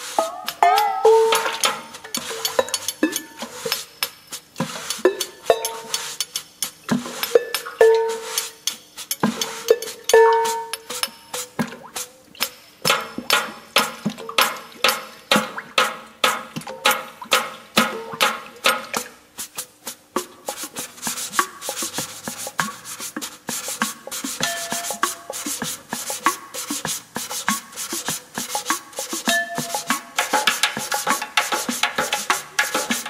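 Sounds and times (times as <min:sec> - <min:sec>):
drum beaten in rhythm: 0:00.0 - 0:33.0
high rasping hiss: 0:19.4 - 0:33.0.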